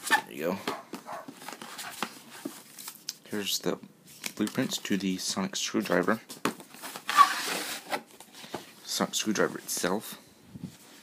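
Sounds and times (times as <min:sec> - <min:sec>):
plastic case scraping cardboard: 0:06.8 - 0:08.1.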